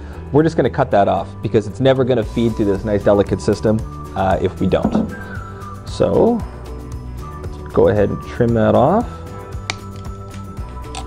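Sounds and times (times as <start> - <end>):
background music with held tones: 0.0 - 11.0.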